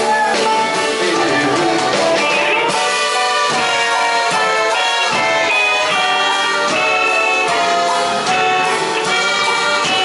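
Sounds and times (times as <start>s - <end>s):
horn melody: 0.0s - 10.0s
rock band playing: 0.0s - 10.0s.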